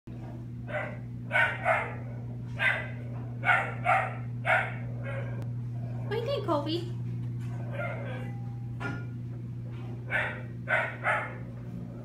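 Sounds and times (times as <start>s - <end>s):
steady low hum: 0.1s - 12.0s
dog barking: 0.7s - 5.4s, 7.7s - 8.3s, 10.1s - 11.5s.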